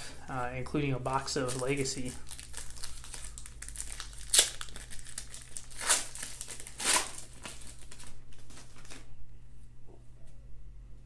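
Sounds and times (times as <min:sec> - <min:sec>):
foil wrapper crinkling: 0:01.1 - 0:09.1.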